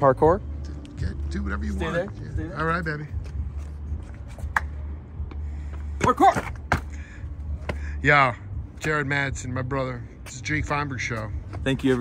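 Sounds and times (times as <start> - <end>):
footsteps on concrete: 0.7 - 7.9, 10.0 - 12.0.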